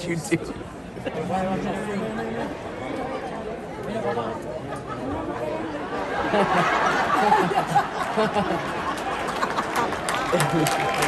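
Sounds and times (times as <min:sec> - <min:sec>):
murmur of audience chatter: 0:00.0 - 0:11.0.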